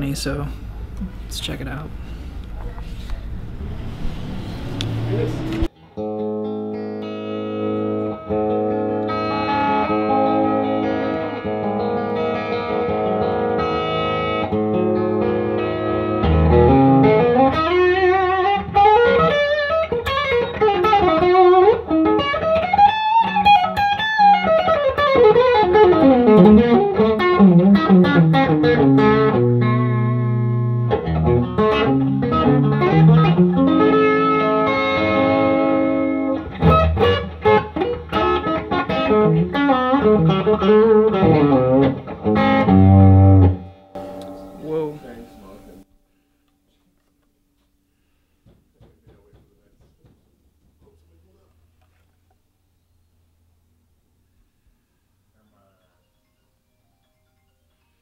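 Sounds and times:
electric guitar lead lines: 0.0s - 46.0s.

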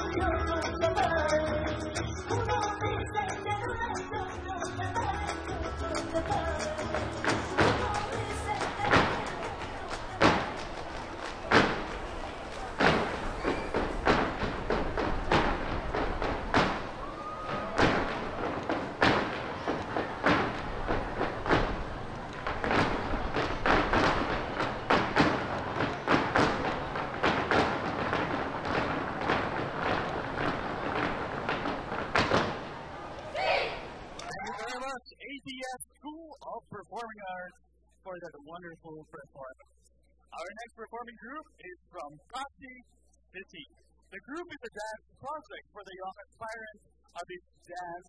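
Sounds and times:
faint music: 0.0s - 48.0s
shoes stamping on stage floor: 6.2s - 34.3s.

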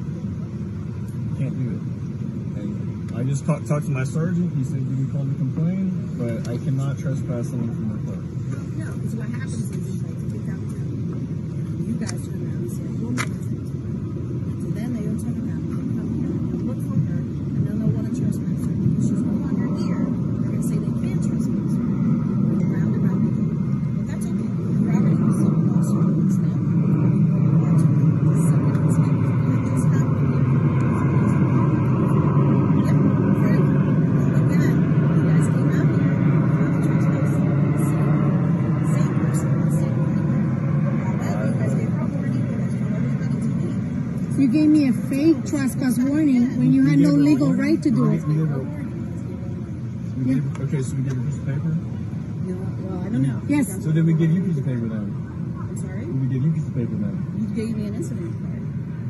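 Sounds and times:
woman and man arguing: 33.0s - 49.6s, 52.4s - 54.2s.

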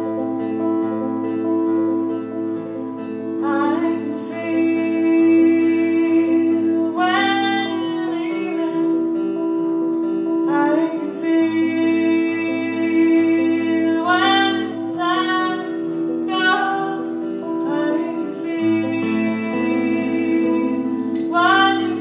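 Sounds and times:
acoustic guitars playing: 0.0s - 22.0s
woman singing: 3.4s - 9.2s, 10.4s - 22.0s.

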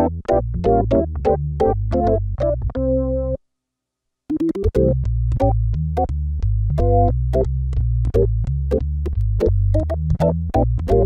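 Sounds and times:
synthesizer held bass notes: 0.0s - 3.4s, 4.4s - 11.0s
synth organ chord stabs: 0.7s - 3.4s.

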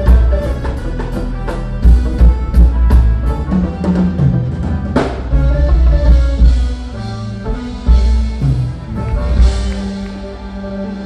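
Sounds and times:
drum kit: 0.0s - 11.0s
electric guitar: 0.0s - 11.0s
heavy bass guitar: 0.0s - 11.0s
keyboards: 0.0s - 11.0s
reggae band playing: 0.0s - 11.0s.

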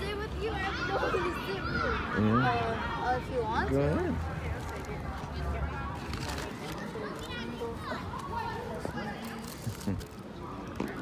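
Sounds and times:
child shouting: 0.0s - 3.7s
children calling and chattering: 0.0s - 11.0s.

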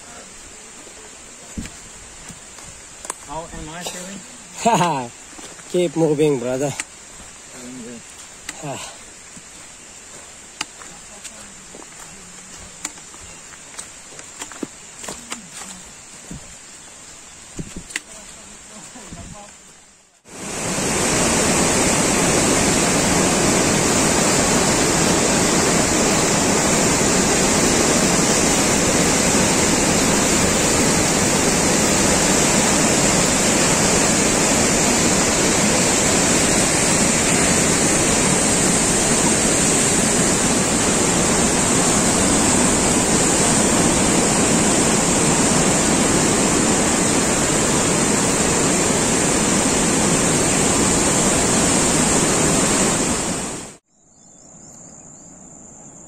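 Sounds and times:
river rushing through rapids: 20.2s - 53.8s.

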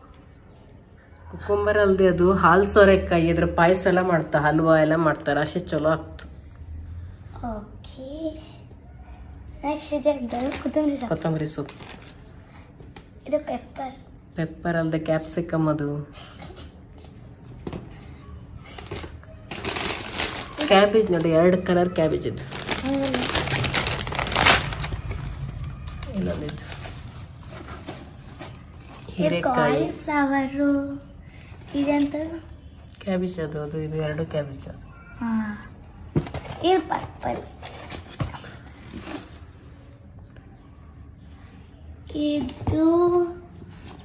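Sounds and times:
plastic bag crinkling: 10.3s - 12.2s, 18.7s - 21.6s, 22.4s - 30.0s.

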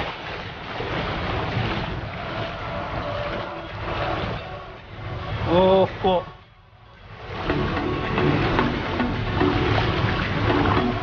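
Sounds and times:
legs splashing through water: 0.0s - 6.0s, 7.0s - 11.0s
stream water flowing: 0.0s - 11.0s.

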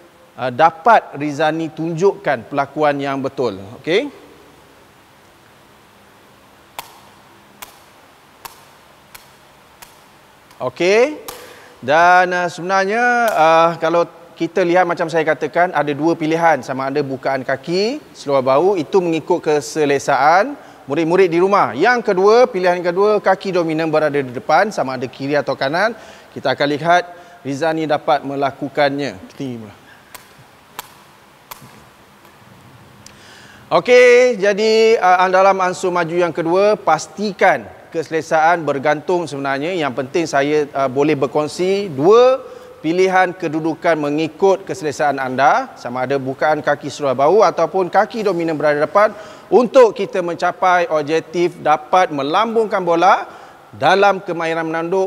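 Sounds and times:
ball being headed taps: 6.8s - 10.6s, 11.2s - 11.6s.

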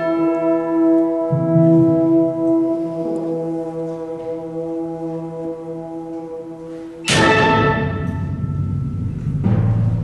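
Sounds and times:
wind band holding a chord: 0.0s - 10.0s.

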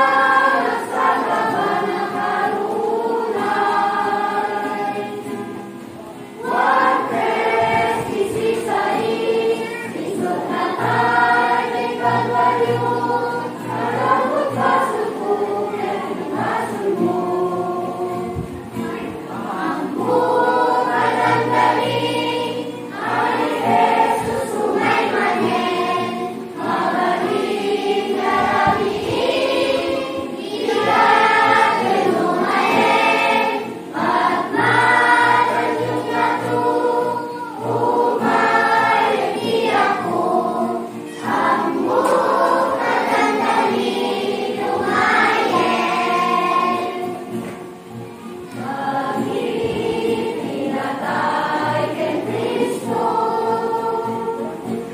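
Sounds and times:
children's choir singing: 0.0s - 54.9s.

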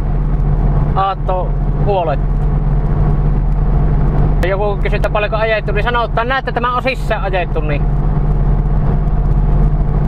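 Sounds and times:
car engine drone: 0.0s - 10.0s
road and tyre noise: 0.0s - 10.0s.

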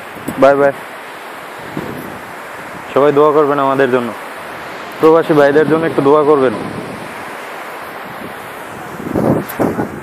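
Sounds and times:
sea surf: 0.0s - 10.0s
wind: 0.0s - 10.0s.

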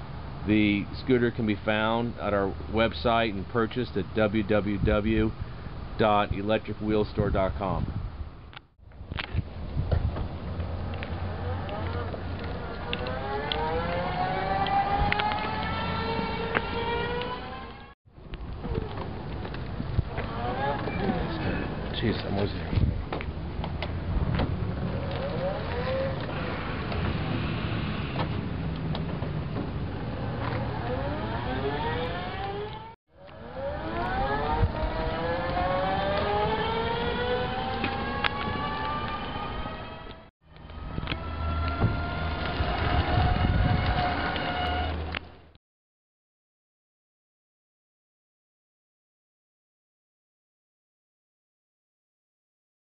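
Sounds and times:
electric motor whining: 10.6s - 17.9s, 19.9s - 21.9s, 24.6s - 45.3s.

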